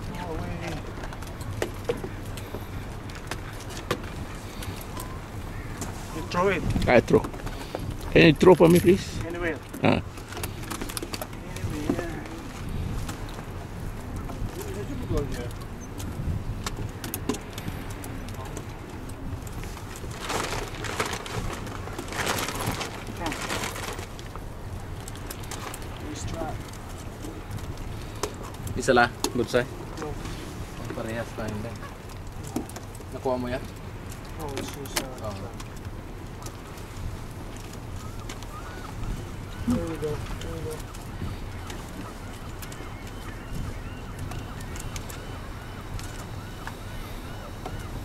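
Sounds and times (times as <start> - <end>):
wind rumbling on microphone: 0.0 - 48.0.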